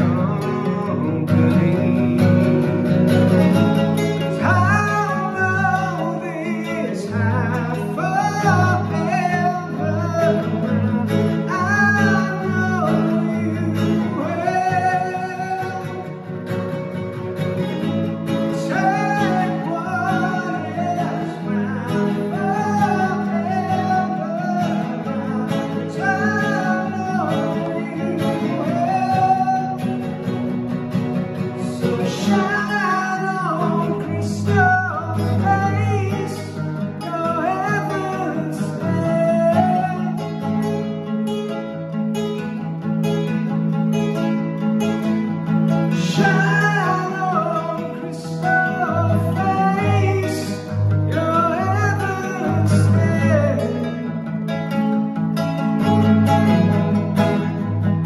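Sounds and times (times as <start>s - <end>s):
man singing: 0.0s - 41.1s, 43.4s - 58.0s
acoustic guitar accompaniment: 0.0s - 58.0s.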